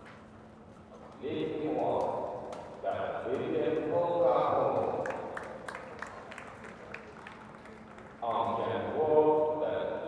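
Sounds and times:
murmur in large hall: 0:00.0 - 0:10.0
scattered claps: 0:04.7 - 0:08.2.

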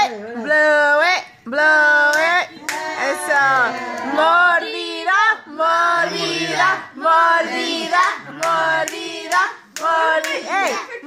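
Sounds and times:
hand claps: 0:08.0 - 0:10.8.

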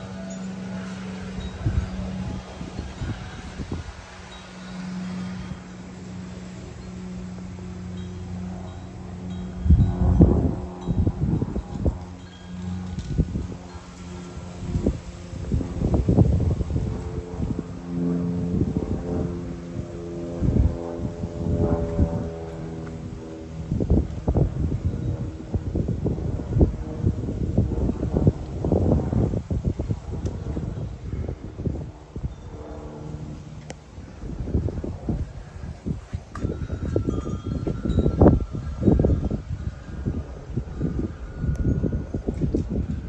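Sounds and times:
wind chimes ringing: 0:00.0 - 0:15.1, 0:36.0 - 0:43.0
wind buffeting microphone: 0:00.0 - 0:43.0.

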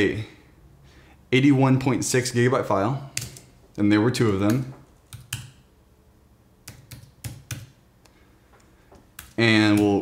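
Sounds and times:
computer keyboard clicks: 0:04.4 - 0:05.6, 0:06.7 - 0:07.8.

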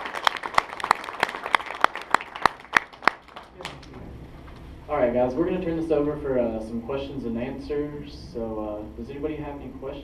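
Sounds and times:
scattered applause: 0:00.0 - 0:03.9.

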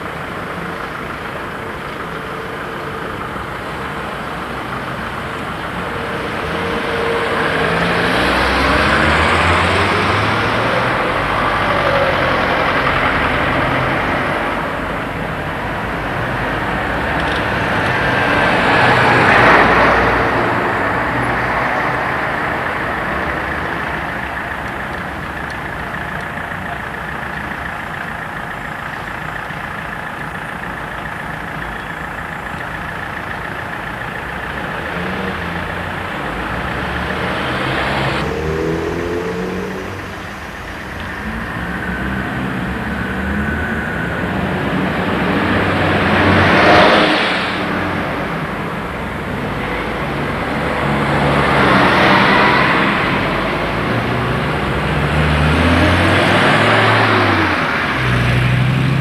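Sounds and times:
car engines and tyres passing: 0:00.0 - 0:59.0.

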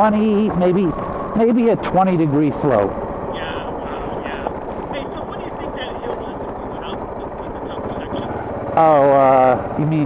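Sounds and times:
motorcycle engine cruising: 0:00.0 - 0:10.0
wind and road noise: 0:00.0 - 0:10.0.

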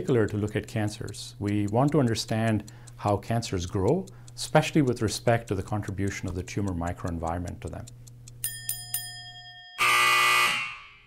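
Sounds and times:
timer tick: 0:00.0 - 0:09.7
loud buzzer: 0:09.8 - 0:11.0.

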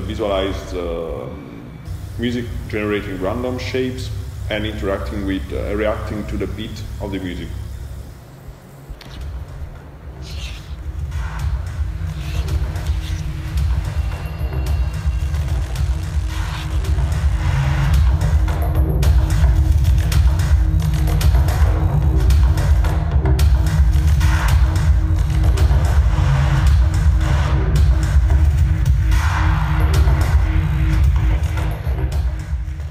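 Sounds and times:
music with heavy bass: 0:09.2 - 0:32.9.

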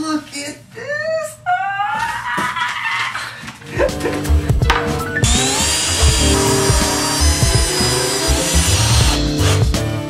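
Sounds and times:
background music with steady beat: 0:03.6 - 0:10.0
power drill driving screw into wood: 0:05.2 - 0:09.7.

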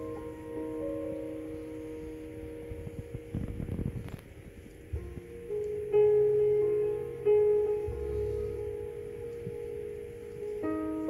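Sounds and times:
grand piano played softly: 0:00.0 - 0:11.0.

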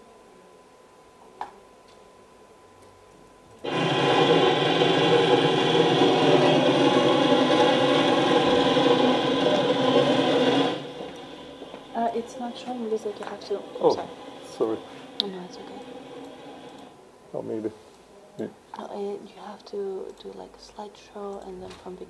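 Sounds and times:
drilling rig machinery over loudspeakers: 0:03.6 - 0:17.0.

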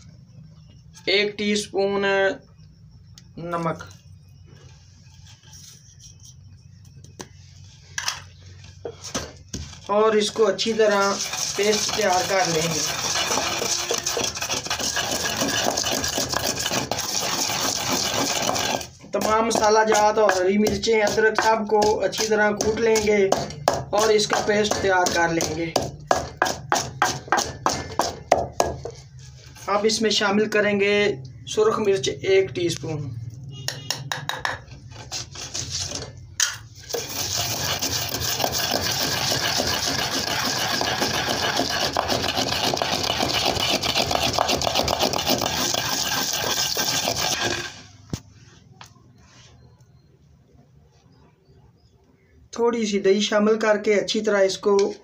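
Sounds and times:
pestle knocking against mortar: 0:12.8 - 0:29.0, 0:33.6 - 0:34.8, 0:36.4 - 0:46.0.

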